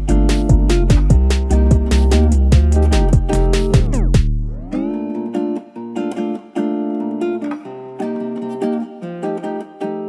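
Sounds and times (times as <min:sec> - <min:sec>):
strummed acoustic guitar chords: 0:00.0 - 0:10.0.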